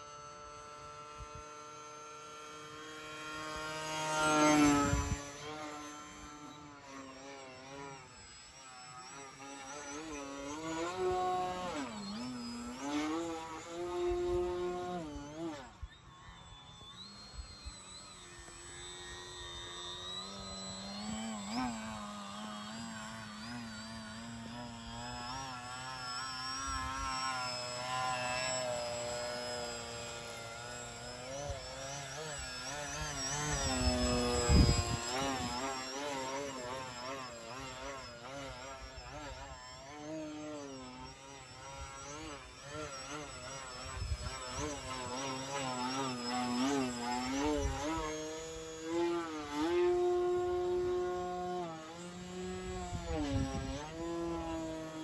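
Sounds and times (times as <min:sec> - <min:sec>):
model plane motor whining: 0:00.0 - 0:55.0.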